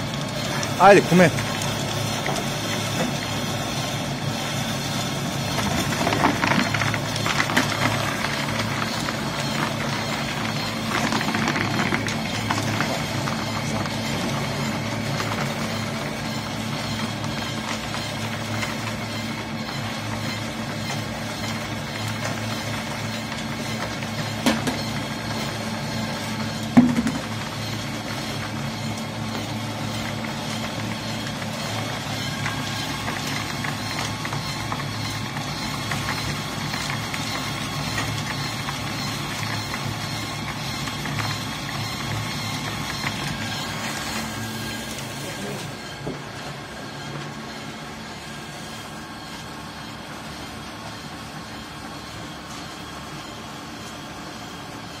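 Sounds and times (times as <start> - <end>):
pellet press humming: 0.0 - 55.0.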